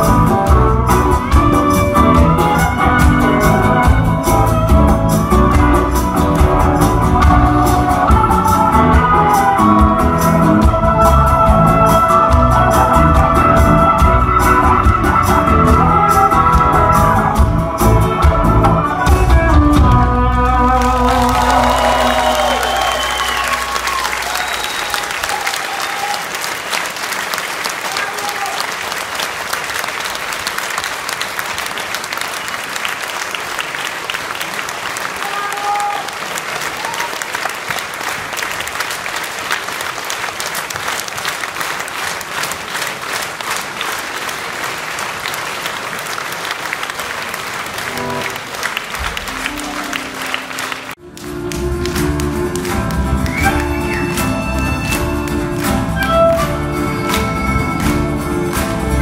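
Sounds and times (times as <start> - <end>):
band playing a song: 0.0 - 26.5, 47.5 - 59.0
audience applauding: 20.7 - 59.0
faint instrument notes: 49.2 - 59.0.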